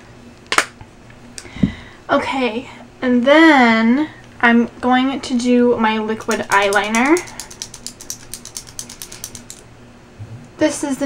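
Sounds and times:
rapid ratchet-like clicking: 0:06.3 - 0:09.6.

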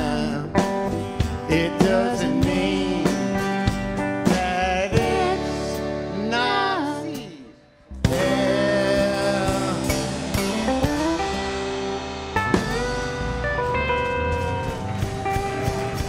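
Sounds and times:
person singing: 0:00.0 - 0:00.7, 0:01.3 - 0:11.3
live country band: 0:00.0 - 0:16.0.

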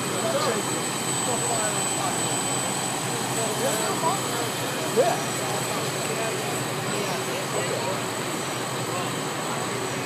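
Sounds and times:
faint voices: 0:00.0 - 0:10.0
fire truck engines running: 0:00.0 - 0:10.0.

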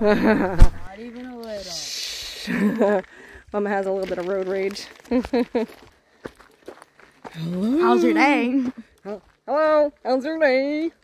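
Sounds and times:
footsteps on dirt trail: 0:00.6 - 0:11.0
person voicing syllables: 0:07.4 - 0:08.4.

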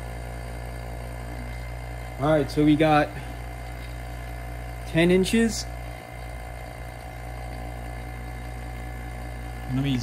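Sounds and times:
vacuum pump humming: 0:00.0 - 0:10.0.

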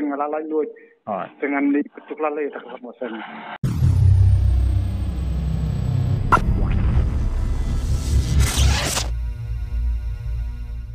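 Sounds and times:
deep bass rumble: 0:03.6 - 0:08.4.

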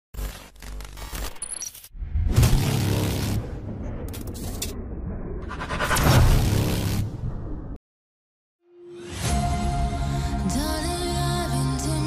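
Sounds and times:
crackling scraping texture: 0:00.2 - 0:07.6.

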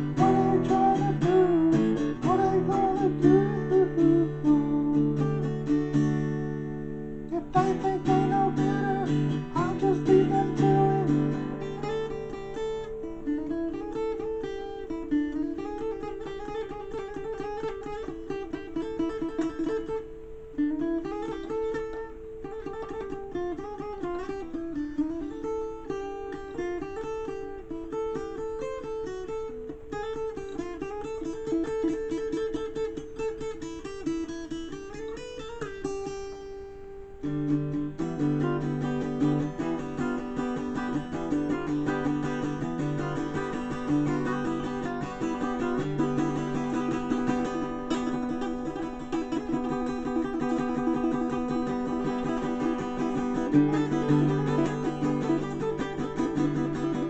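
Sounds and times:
acoustic guitar playing: 0:00.0 - 0:57.0.

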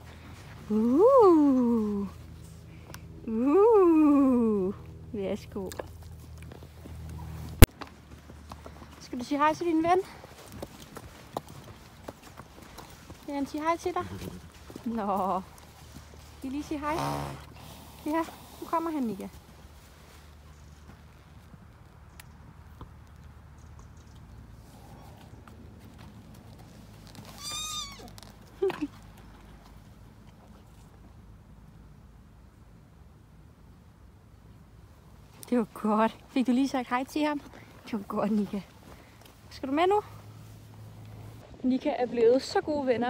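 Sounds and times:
horse hooves stepping: 0:05.5 - 0:31.2
horse squealing: 0:27.2 - 0:28.2.

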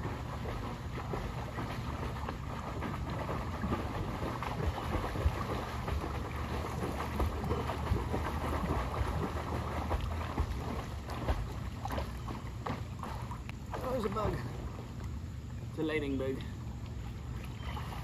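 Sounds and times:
water splashing: 0:00.0 - 0:18.0.

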